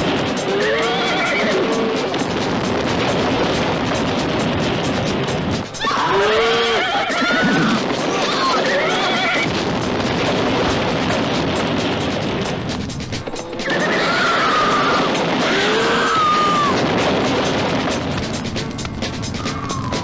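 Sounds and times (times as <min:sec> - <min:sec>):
film music: 0:00.0 - 0:20.0
steady rushing noise: 0:00.0 - 0:20.0
horses whinnying: 0:00.4 - 0:02.2, 0:05.7 - 0:09.5, 0:13.4 - 0:17.0, 0:19.3 - 0:20.0.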